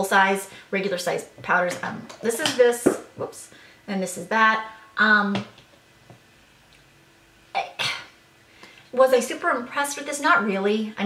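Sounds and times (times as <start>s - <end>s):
woman coughing: 7.6s - 8.1s.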